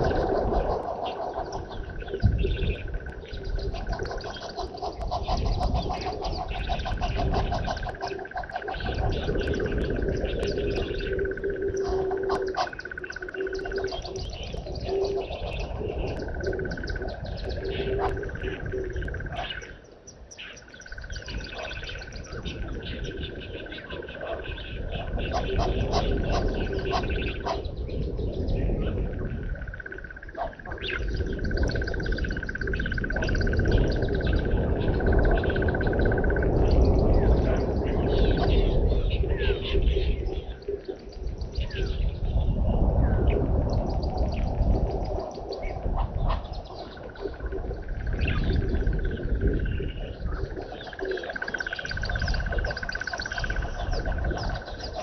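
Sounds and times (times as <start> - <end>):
birds chirping and calling: 0.0 - 55.0.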